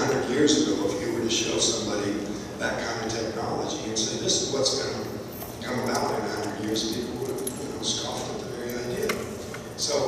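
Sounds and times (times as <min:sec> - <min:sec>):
man speaking through loudspeakers: 0:00.0 - 0:10.0.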